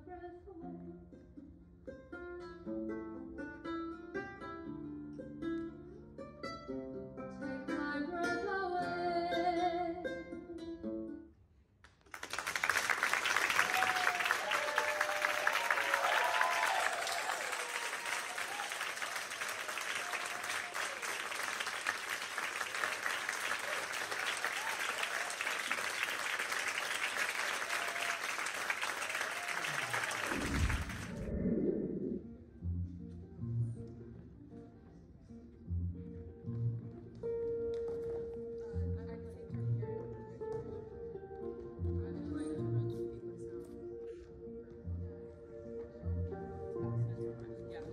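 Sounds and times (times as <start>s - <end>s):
plucked-string music with singing: 0.0s - 11.4s, 32.6s - 47.9s
audience applauding: 12.0s - 31.3s
audience cheers: 12.8s - 31.4s.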